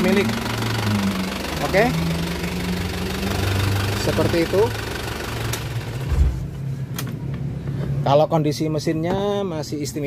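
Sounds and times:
diesel engine idling: 0:00.0 - 0:06.8.

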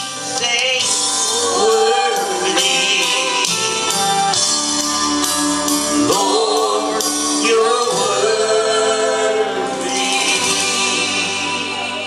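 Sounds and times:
man singing hymn: 0:00.3 - 0:04.0, 0:06.0 - 0:12.0.

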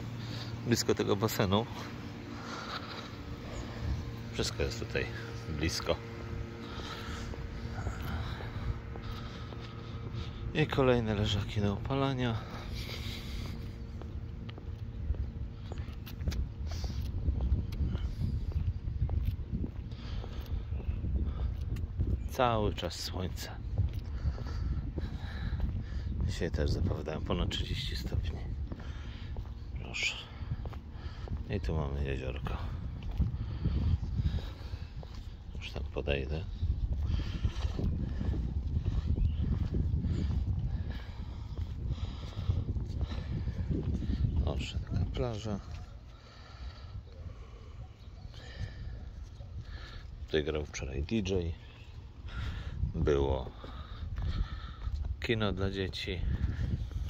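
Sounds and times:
footsteps on paved path: 0:00.0 - 0:57.0
steady low rumble: 0:00.0 - 0:57.0
wind buffeting microphone: 0:00.0 - 0:57.0.

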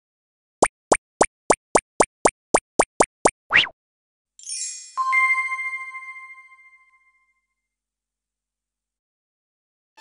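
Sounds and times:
cartoon pop sound effects: 0:00.6 - 0:03.8.

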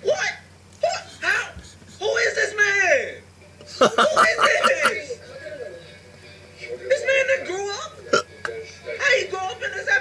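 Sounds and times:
man talking and exclaiming: 0:03.8 - 0:05.0.

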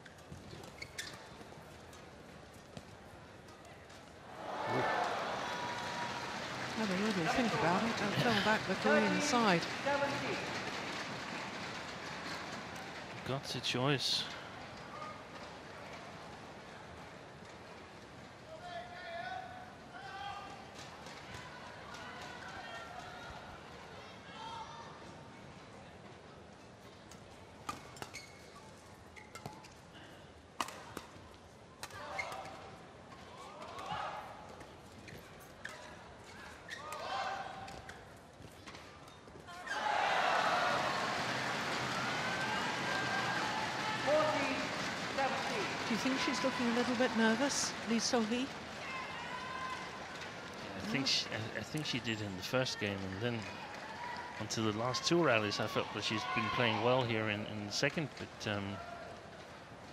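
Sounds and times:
crowd cheering: 0:04.3 - 0:13.2, 0:39.5 - 0:57.4.

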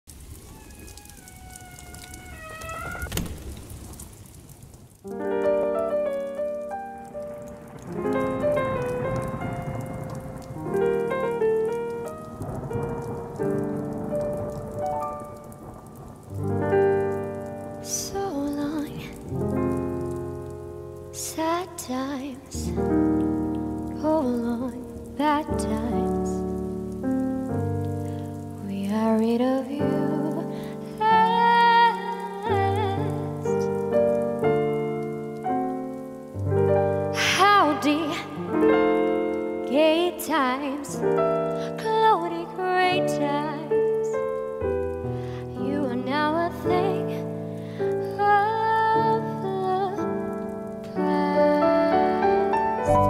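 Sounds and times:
rain patter: 0:00.0 - 0:53.0
sharp crack: 0:01.8 - 0:05.2.

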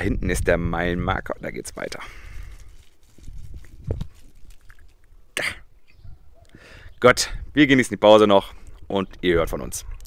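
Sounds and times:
faint outdoor background noise: 0:00.0 - 0:10.0
person coughing: 0:05.4 - 0:05.7.

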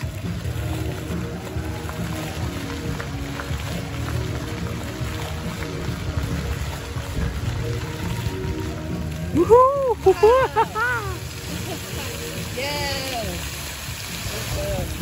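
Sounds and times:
fountain jets splashing: 0:00.0 - 0:15.0
fountain show music: 0:00.0 - 0:15.0.

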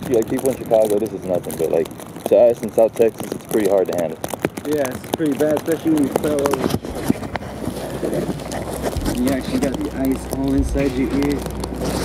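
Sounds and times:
footsteps crunching on snow: 0:02.3 - 0:12.0.

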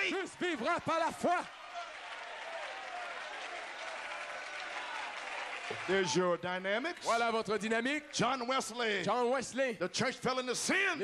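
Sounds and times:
congregation applauding: 0:00.0 - 0:09.3.

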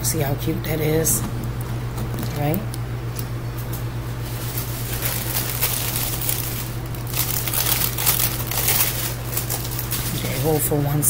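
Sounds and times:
steady low hum: 0:00.0 - 0:11.0
wrapping material crinkling: 0:04.2 - 0:10.8.

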